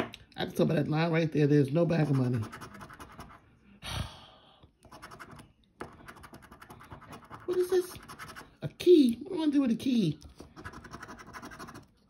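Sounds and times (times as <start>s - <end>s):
coin scratching lottery ticket: 2.0s - 3.4s, 4.9s - 8.6s, 10.4s - 11.9s.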